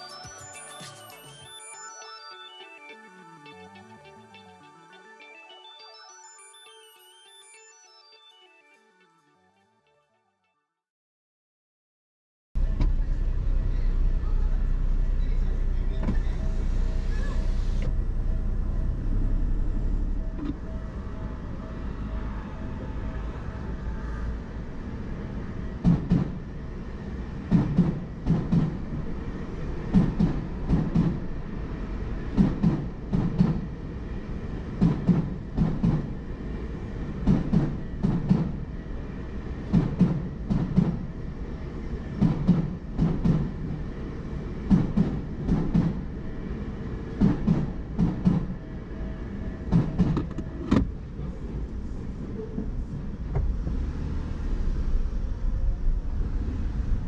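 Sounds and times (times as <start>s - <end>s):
low steady train rumble: 12.6s - 57.0s
train wheels thumping over rail joints: 25.8s - 26.4s, 27.4s - 29.1s, 29.9s - 31.3s, 32.3s - 33.8s, 34.7s - 36.2s, 37.2s - 38.7s, 39.6s - 41.2s, 42.1s - 43.9s, 44.6s - 46.2s, 47.2s - 48.6s, 49.7s - 50.9s.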